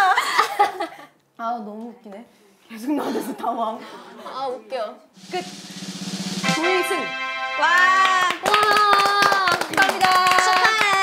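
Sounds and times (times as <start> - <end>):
people clapping: 7.6 - 11.0.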